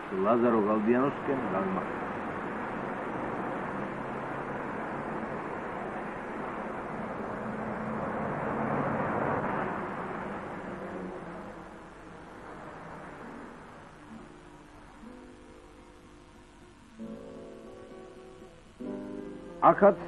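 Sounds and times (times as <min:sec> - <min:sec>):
passing cars and buses: 0:00.0 - 0:20.0.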